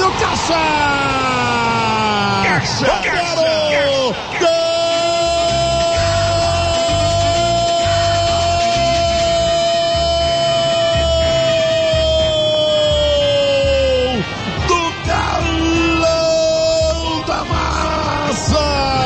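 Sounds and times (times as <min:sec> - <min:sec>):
commentator's drawn-out goal cry: 0:00.0 - 0:19.0
rhythmic music beat: 0:04.3 - 0:19.0.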